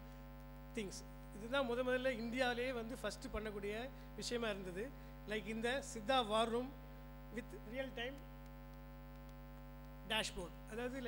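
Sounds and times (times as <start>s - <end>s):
mains hum: 0.0s - 11.0s.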